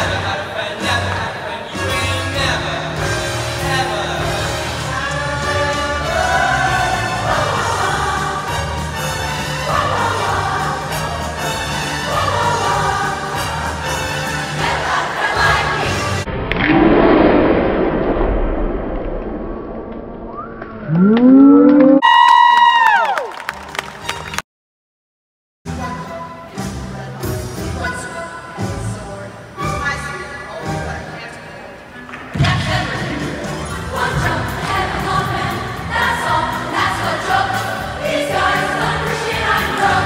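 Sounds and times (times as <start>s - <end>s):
choir singing: 3.6s - 16.3s, 32.4s - 40.0s
vocal note breaking into squeal: 20.4s - 22.0s.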